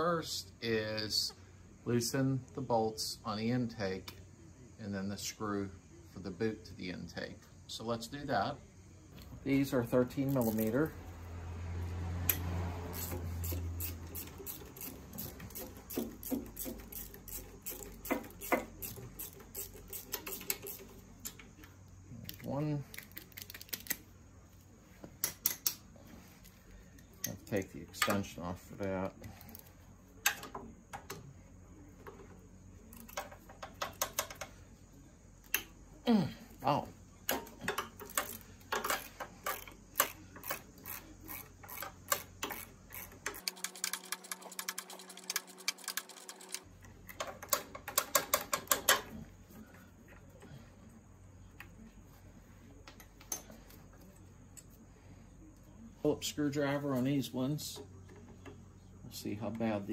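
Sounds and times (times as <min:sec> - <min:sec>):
tools clacking: 0:12.2 - 0:24.0, 0:25.2 - 0:28.5, 0:32.0 - 0:34.6, 0:37.2 - 0:50.6
socket ratchet clicking: 0:12.3 - 0:21.4.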